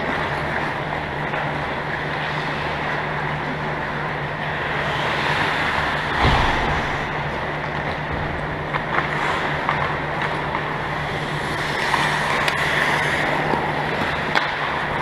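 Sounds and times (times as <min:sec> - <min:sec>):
ice rink low hum: 0:00.0 - 0:15.0
dull low thump: 0:06.1 - 0:08.5.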